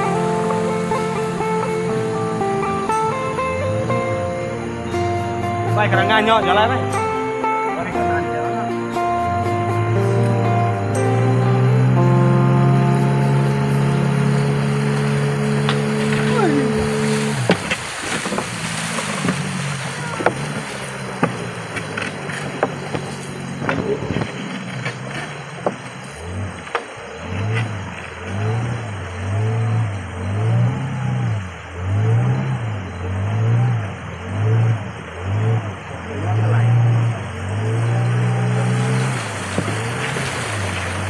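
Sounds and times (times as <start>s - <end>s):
outboard motor running: 0.0s - 41.0s.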